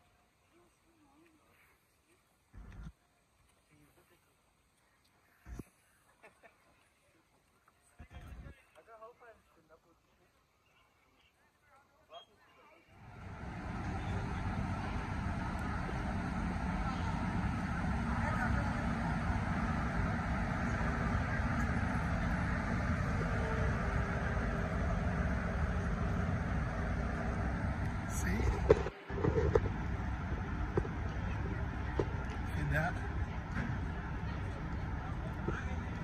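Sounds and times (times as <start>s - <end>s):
faint steady hum: 0.0s - 36.0s
railway station rumble: 12.8s - 36.0s
man speaking: 28.1s - 28.7s, 32.5s - 33.0s.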